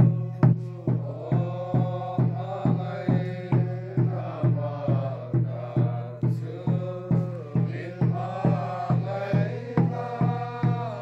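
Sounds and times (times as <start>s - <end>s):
group singing a hymn: 0.0s - 11.0s
hand drum beating steadily: 0.0s - 11.0s.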